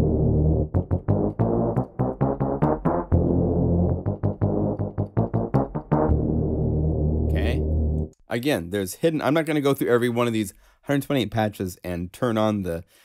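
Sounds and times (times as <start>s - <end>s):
low synth bass: 0.0s - 8.2s.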